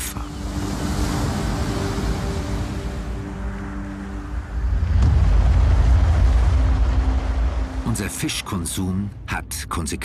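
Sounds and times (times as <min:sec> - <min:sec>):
deep steady rumble: 0:03.1 - 0:10.0.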